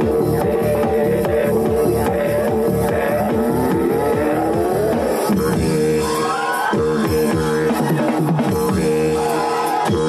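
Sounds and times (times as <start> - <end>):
steady bass beat: 0.0 - 10.0.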